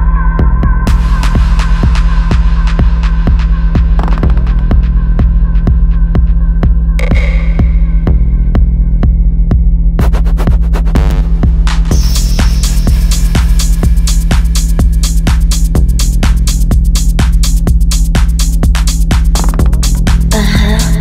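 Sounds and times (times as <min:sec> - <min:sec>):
kick drum beat: 0:00.0 - 0:21.0
throbbing bassline: 0:00.0 - 0:21.0
sharp hi-hats: 0:10.0 - 0:21.0.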